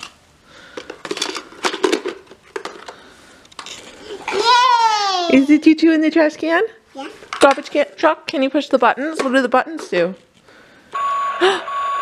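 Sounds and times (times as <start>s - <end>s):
plastic toy pieces clacking: 0.8s - 3.0s.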